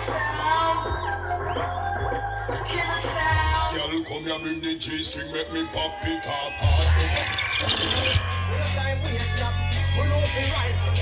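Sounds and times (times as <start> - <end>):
deep bass line: 0.0 - 5.1, 6.6 - 11.0
dancehall music over loudspeakers: 0.0 - 11.0.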